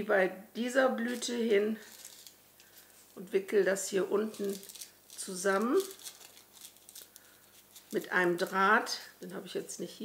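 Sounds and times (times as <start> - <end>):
crepe paper rustling and crinkling: 1.0 - 3.3, 4.0 - 9.1.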